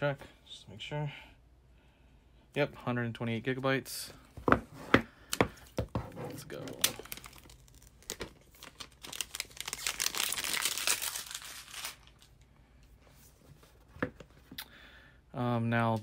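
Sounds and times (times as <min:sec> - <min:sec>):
plastic strip tearing and crinkling: 0:06.5 - 0:12.4.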